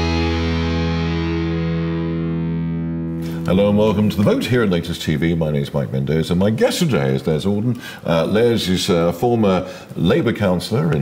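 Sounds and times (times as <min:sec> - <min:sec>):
theme music: 0:00.0 - 0:03.2
distorted electric guitar chord: 0:00.0 - 0:03.4.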